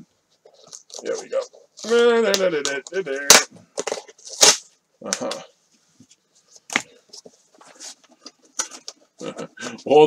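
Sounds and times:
person muttering: 5.0s - 5.5s, 9.2s - 9.8s.

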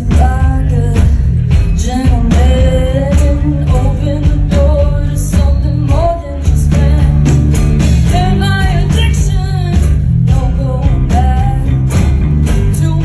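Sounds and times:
blues-rock band playing: 0.0s - 13.0s
woman singing lead: 0.0s - 13.0s.

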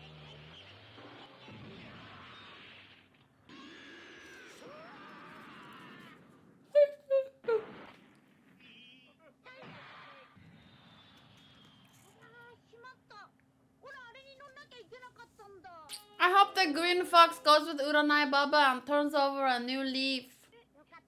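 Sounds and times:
quiet cartoon voices: 6.8s - 7.8s.

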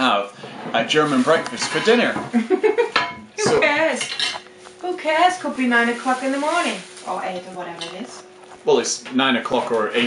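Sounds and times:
crockery and cutlery clinking: 1.2s - 2.3s, 2.9s - 4.5s.

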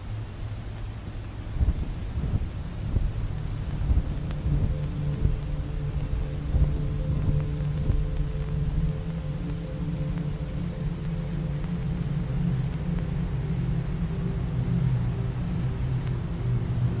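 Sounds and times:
deep rumble: 0.0s - 17.0s
low droning chord: 0.0s - 17.0s.

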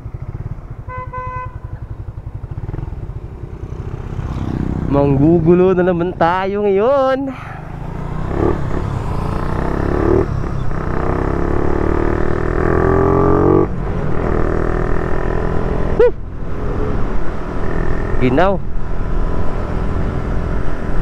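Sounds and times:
motorcycle engine accelerating: 0.0s - 21.0s.

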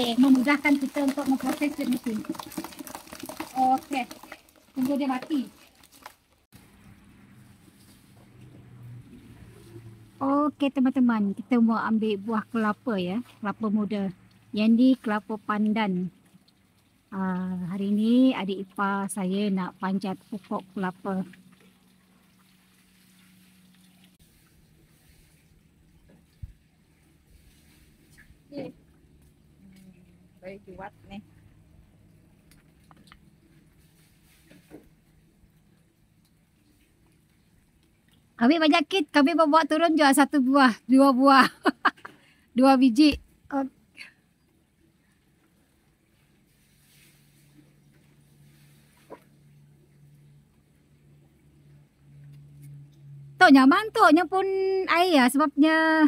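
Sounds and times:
low steady hum: 6.6s - 56.0s
faint steady hum: 41.9s - 56.0s.

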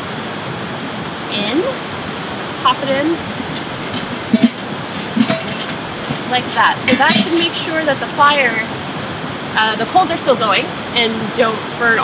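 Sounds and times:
grill lid clanking against bowl: 3.2s - 7.6s.

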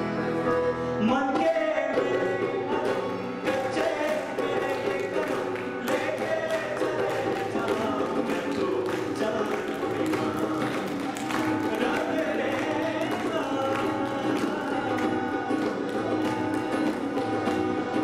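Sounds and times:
harmonium: 0.0s - 18.0s
keyboard: 0.0s - 18.0s
man singing: 0.0s - 18.0s
strummed acoustic guitar: 0.0s - 18.0s.

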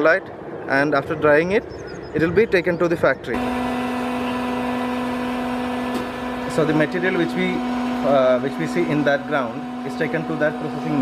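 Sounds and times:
electric motor hum: 3.4s - 11.0s.

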